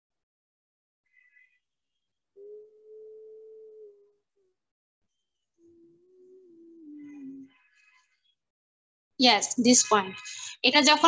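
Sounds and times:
woman humming: 0:02.4 - 0:04.7, 0:05.6 - 0:07.6.

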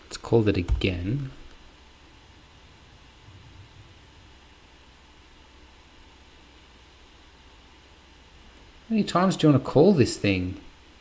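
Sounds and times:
background hiss: 0:00.0 - 0:11.0
low hum: 0:01.0 - 0:07.2
faint low sound: 0:02.2 - 0:05.9.

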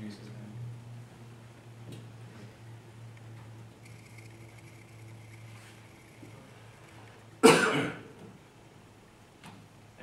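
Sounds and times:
person coughing: 0:07.4 - 0:08.1.

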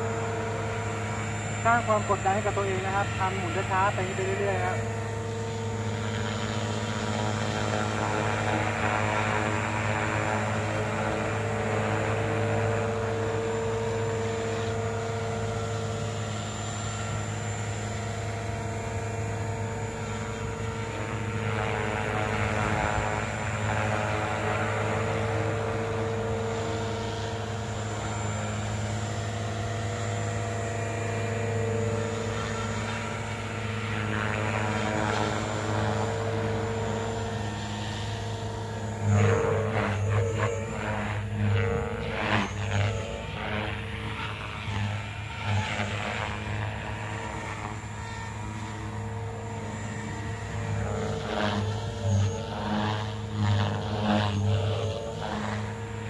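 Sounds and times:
model helicopter rotor whine: 0:00.0 - 0:56.0.

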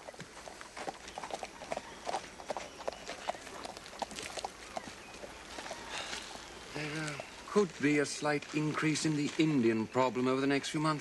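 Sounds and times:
horse hooves clopping on dirt: 0:00.0 - 0:11.0.

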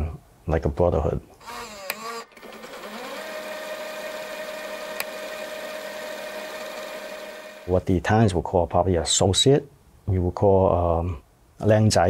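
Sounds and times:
sharp click: 0:05.0 - 0:05.2.

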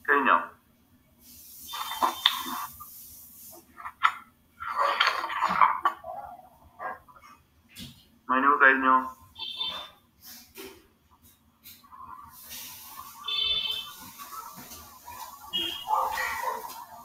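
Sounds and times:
hiss: 0:01.2 - 0:03.7, 0:11.6 - 0:17.0
speech through video call: 0:08.3 - 0:09.8.

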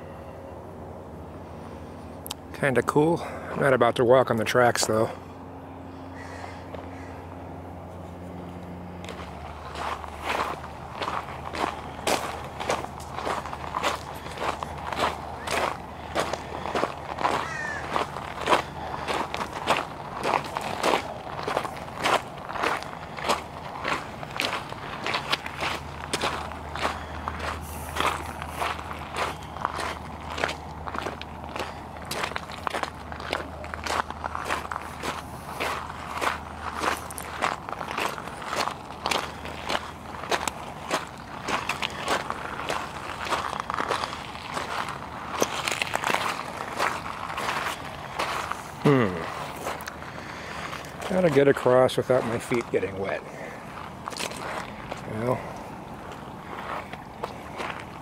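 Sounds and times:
footsteps crunching on gravel: 0:08.0 - 0:58.0.

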